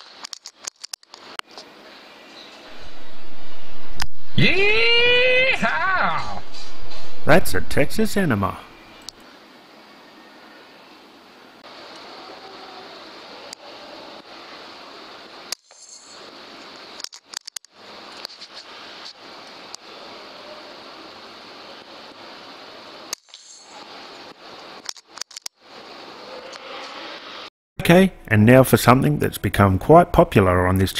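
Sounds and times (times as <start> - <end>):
steady background hiss: 0.0 - 30.9.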